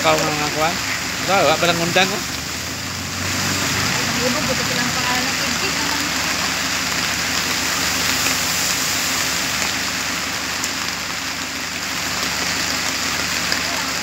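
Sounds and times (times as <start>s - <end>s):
rain falling steadily: 0.0s - 14.0s.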